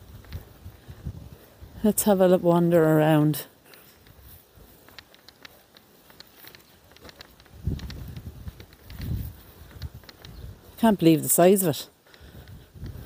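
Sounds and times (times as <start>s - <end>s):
wind buffeting microphone: 0.0s - 2.1s, 6.8s - 11.0s, 12.2s - 13.0s
footsteps outdoors: 0.0s - 13.0s.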